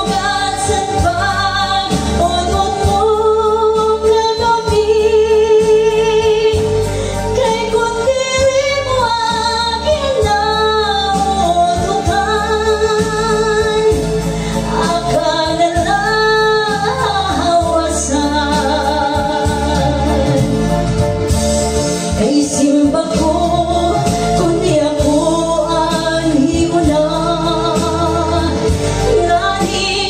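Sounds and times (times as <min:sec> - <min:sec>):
backing track with bass beat: 0:00.0 - 0:30.0
woman singing into a microphone: 0:00.0 - 0:30.0.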